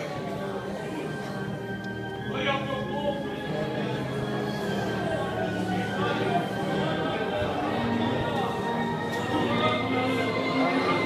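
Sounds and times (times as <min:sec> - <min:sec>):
church orchestra with brass: 0:00.0 - 0:11.0
congregation singing: 0:00.0 - 0:11.0.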